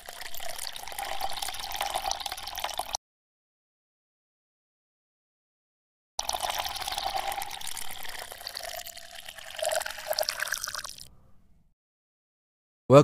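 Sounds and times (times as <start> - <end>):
water pouring and trickling: 0.0 - 3.0, 6.2 - 11.1.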